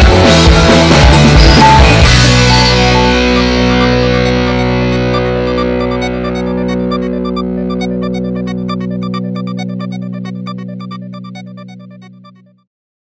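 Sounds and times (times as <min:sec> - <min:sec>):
held music chord: 0:02.3 - 0:12.3.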